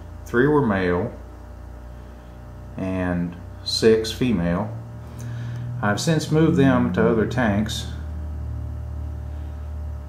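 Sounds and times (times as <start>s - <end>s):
aquarium equipment humming: 0.0s - 10.0s.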